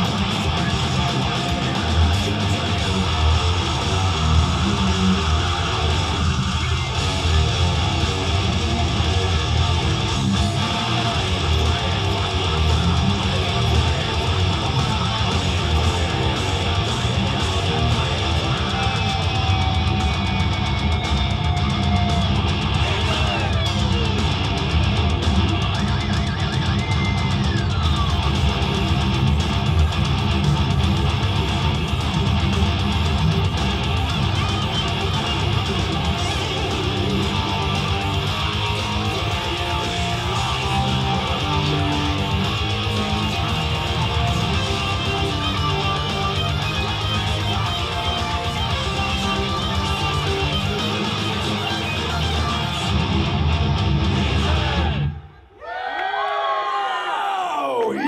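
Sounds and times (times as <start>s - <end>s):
distorted electric guitar: 0.0s - 55.4s.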